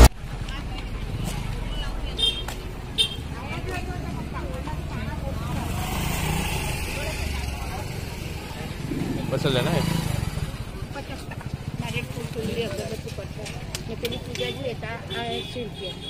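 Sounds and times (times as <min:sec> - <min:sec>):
people talking: 0:00.0 - 0:16.0.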